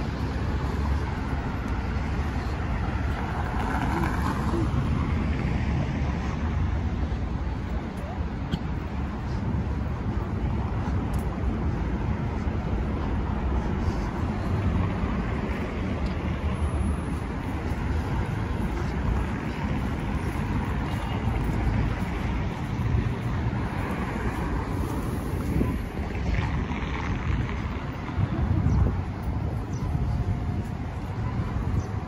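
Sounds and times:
hum of road traffic: 0.0 - 32.0
wind buffeting microphone: 0.0 - 32.0.

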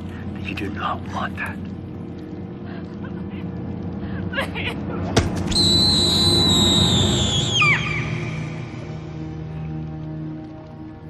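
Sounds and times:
low ambient rumble: 0.0 - 11.0
high steady whistle: 5.5 - 8.9.

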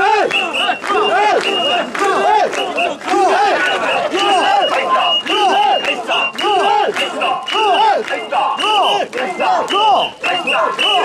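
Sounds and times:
men chanting rhythmically: 0.0 - 11.0.

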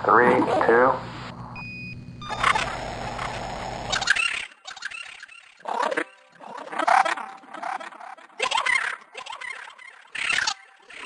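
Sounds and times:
hissing static noise: 0.0 - 4.1
faint crackles: 1.1 - 4.1
electronic beep: 1.4 - 4.2.

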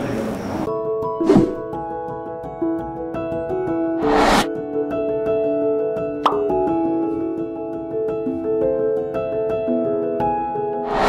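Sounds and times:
soft background music: 0.7 - 10.9.

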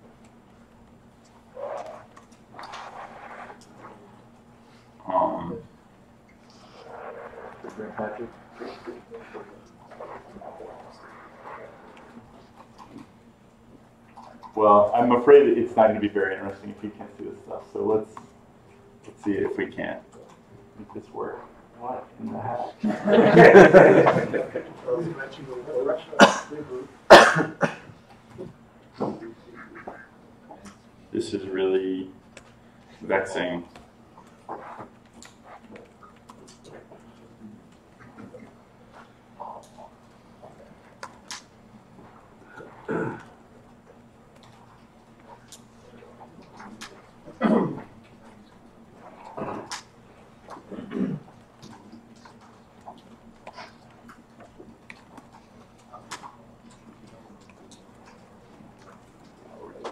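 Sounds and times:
room noise: 0.0 - 59.9
person coughing: 26.1 - 27.9, 42.8 - 43.3, 47.4 - 47.9, 50.7 - 51.3.

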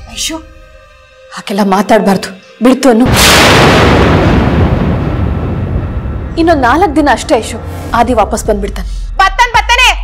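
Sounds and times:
dramatic boom: 3.0 - 8.7
low rumble: 3.1 - 9.2.

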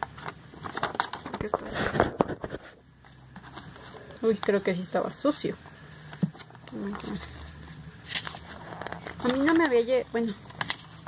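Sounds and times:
rustle of handling: 0.1 - 4.8.

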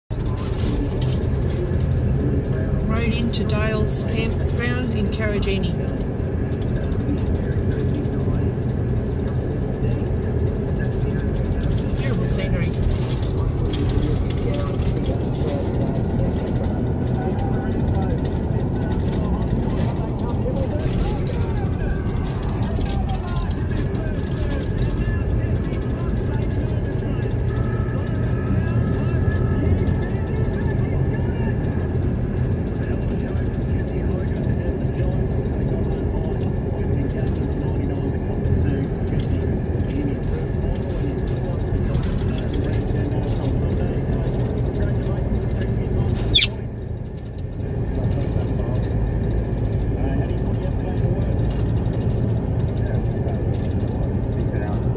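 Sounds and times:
car engine and tyre noise: 0.1 - 54.9.

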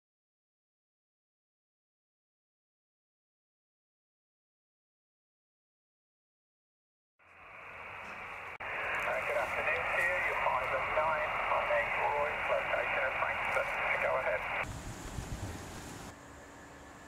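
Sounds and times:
radio receiver hiss: 7.2 - 14.6
low rough outdoor noise: 7.2 - 17.0
warbling radio signals: 8.6 - 14.6.

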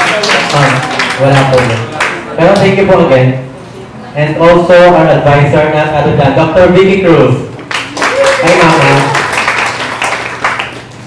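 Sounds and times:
audience applauding: 0.0 - 2.2, 7.7 - 11.0.

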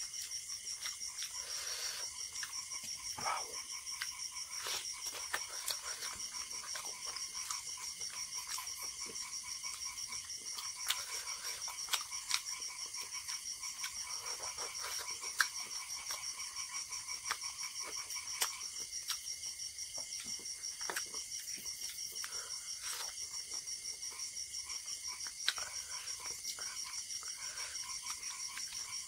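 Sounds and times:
chorus of frogs and insects: 0.0 - 29.0
wet chewing and eating smacks: 0.0 - 29.0.

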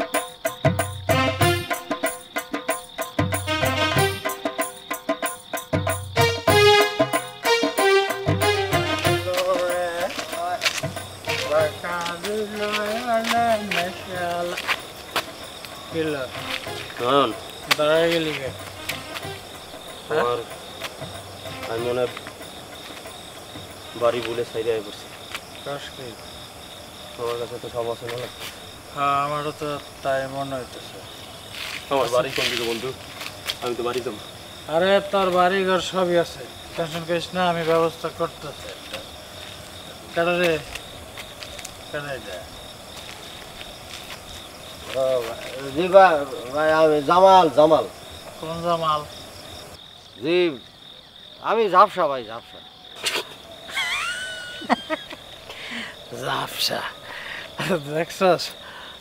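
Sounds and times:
crickets chirring: 0.0 - 59.0
person speaking: 8.7 - 14.7.

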